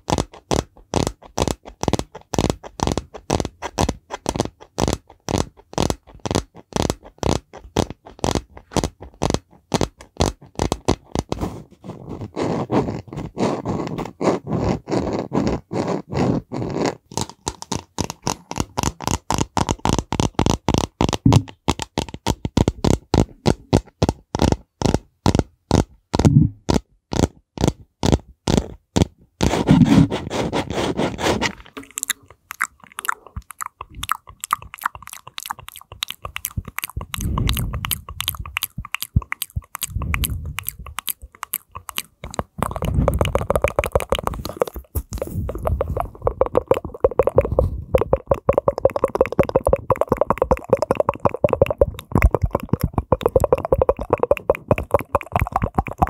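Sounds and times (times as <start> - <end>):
fingers scratching and tapping microphone: 0.0 - 56.0
hands rubbing over microphone: 8.2 - 17.0, 28.5 - 32.0, 42.6 - 48.2.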